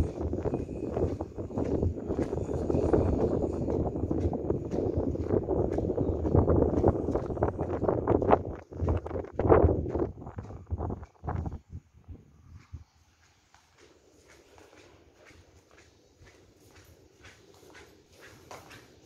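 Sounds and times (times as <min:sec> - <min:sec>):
wind buffeting microphone: 0:00.0 - 0:13.2.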